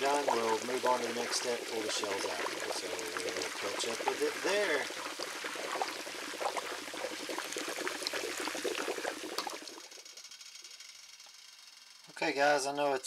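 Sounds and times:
wax boiling and bubbling: 0:00.0 - 0:12.7
even hiss: 0:00.0 - 0:13.0.

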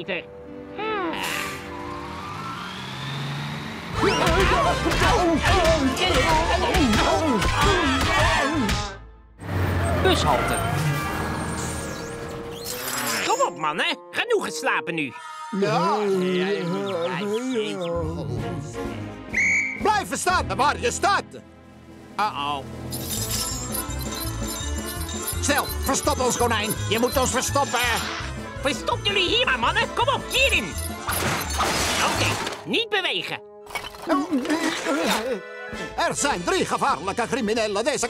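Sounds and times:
background music: 0:00.0 - 0:38.0
bus engine and road noise: 0:01.1 - 0:05.4, 0:09.4 - 0:12.6
police whistle blast: 0:19.3 - 0:19.8.

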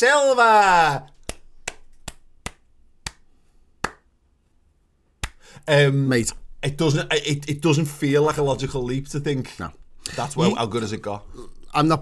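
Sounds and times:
person clapping slowly: 0:01.1 - 0:04.1, 0:05.2 - 0:05.4.

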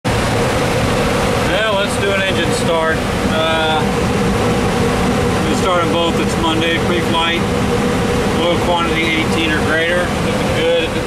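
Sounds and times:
air-conditioning airflow: 0:00.0 - 0:11.0
auxiliary power unit rushing: 0:00.0 - 0:11.0
steady hum: 0:00.0 - 0:11.0
man speaking: 0:01.5 - 0:03.9, 0:08.4 - 0:11.0.

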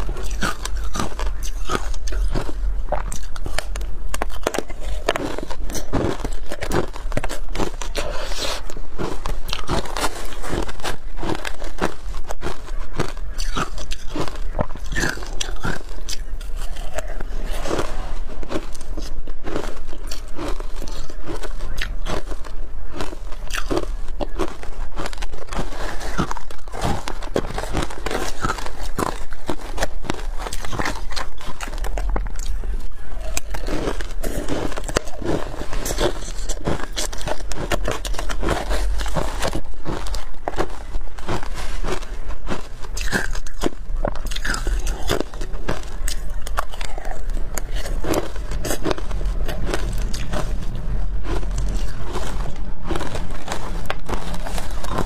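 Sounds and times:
crunchy ice chewing: 0:00.0 - 0:55.0.

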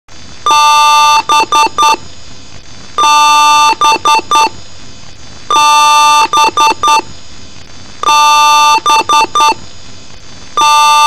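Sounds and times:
background hum: 0:00.1 - 0:11.0
computer beeps: 0:00.5 - 0:02.0, 0:03.0 - 0:04.6, 0:05.5 - 0:07.1, 0:08.0 - 0:09.6.

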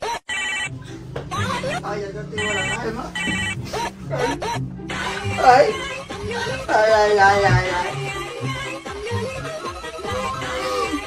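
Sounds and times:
toy walkie-talkie ringing tone: 0:00.2 - 0:00.7
background music: 0:00.6 - 0:11.0.

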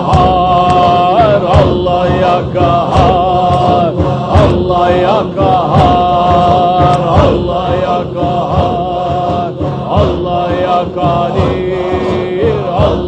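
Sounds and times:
men chanting rhythmically: 0:00.0 - 0:13.0.

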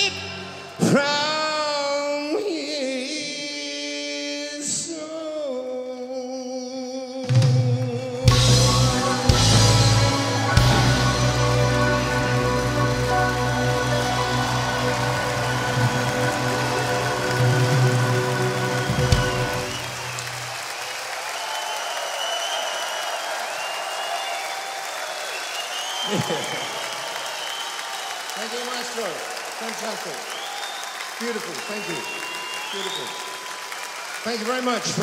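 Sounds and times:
audience applauding and cheering: 0:00.0 - 0:02.6, 0:07.5 - 0:35.0
audience whistling: 0:07.4 - 0:35.0
drum and cymbal hit: 0:08.3 - 0:12.6
rock band and orchestra chord: 0:08.3 - 0:20.2.

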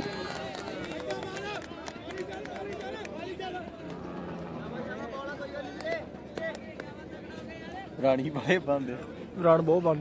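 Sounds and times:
voices calling out and chattering: 0:00.0 - 0:10.0.

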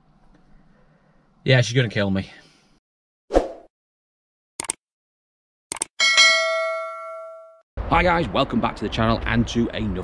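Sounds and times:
bell chime ding: 0:06.0 - 0:07.6.

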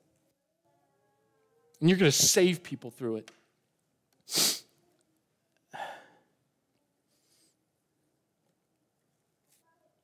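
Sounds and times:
man sighing: 0:05.7 - 0:06.2.

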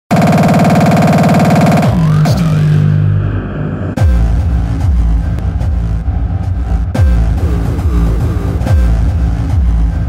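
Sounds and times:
pulsing synthesizer chord: 0:00.1 - 0:10.0.

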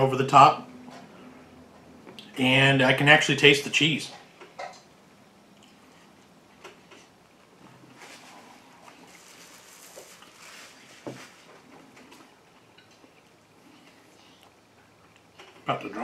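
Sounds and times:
paper napkin rustling: 0:07.9 - 0:11.7
man chewing crispy food: 0:08.1 - 0:15.4.

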